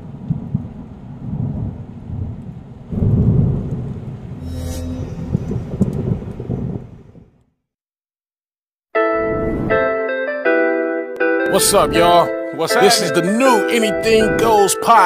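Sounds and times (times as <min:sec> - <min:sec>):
rain: 0:00.0 - 0:04.5, 0:05.4 - 0:07.4
thunder rumbling: 0:00.0 - 0:07.4.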